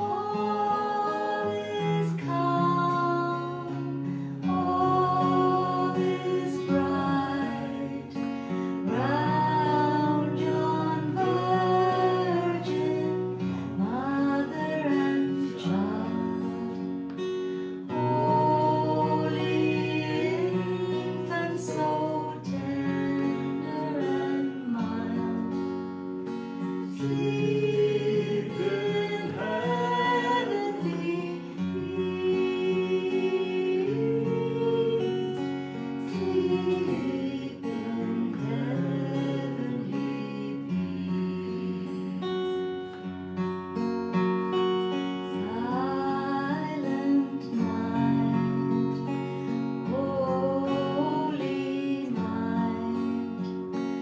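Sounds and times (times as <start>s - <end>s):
woman singing a carol: 0.0s - 26.0s, 26.6s - 43.1s, 45.1s - 53.8s
acoustic guitars: 0.0s - 54.0s.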